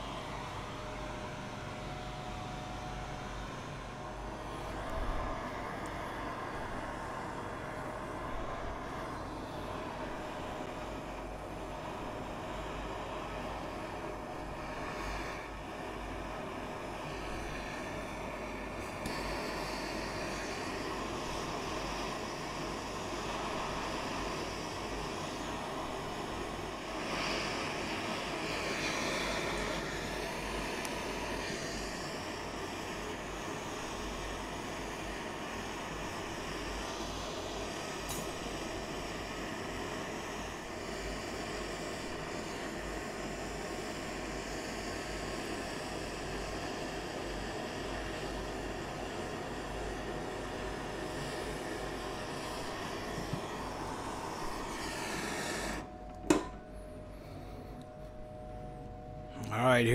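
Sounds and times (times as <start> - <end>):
gas torches roaring: 0.0 - 56.6.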